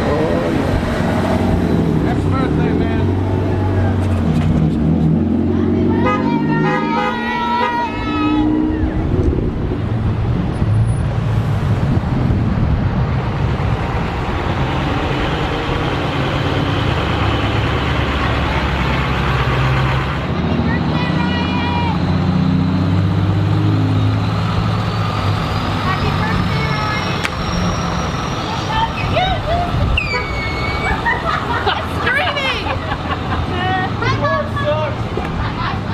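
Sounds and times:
vehicles driving past: 0:00.0 - 0:35.9
car horn toots: 0:05.9 - 0:08.6.

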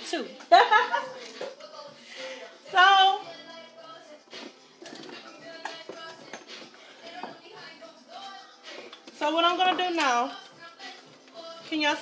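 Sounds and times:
faint background music: 0:00.0 - 0:12.0
utensils and containers knocking: 0:04.4 - 0:07.6, 0:08.8 - 0:10.3.

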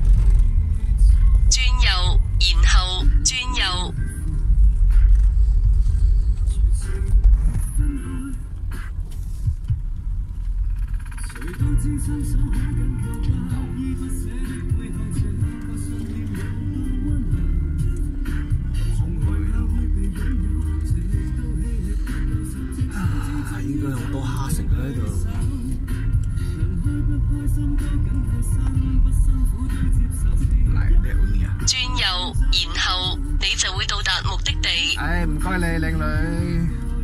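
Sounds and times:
car driving slowly: 0:00.0 - 0:01.5, 0:04.0 - 0:31.7
music playing: 0:00.6 - 0:09.8, 0:11.6 - 0:37.0.

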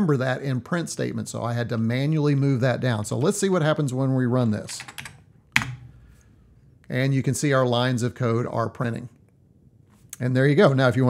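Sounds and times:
keyboard key click: 0:04.9 - 0:05.9.

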